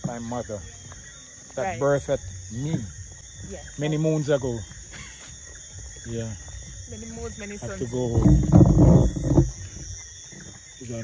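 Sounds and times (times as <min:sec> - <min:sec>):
insects chorus: 0:00.0 - 0:11.0
low rumble on microphone: 0:06.0 - 0:10.6.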